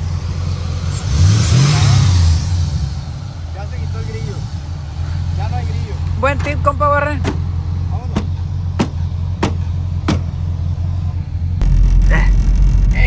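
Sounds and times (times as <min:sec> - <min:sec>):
car engine idling: 0:00.0 - 0:13.0
vehicle driving rumble: 0:00.0 - 0:13.0.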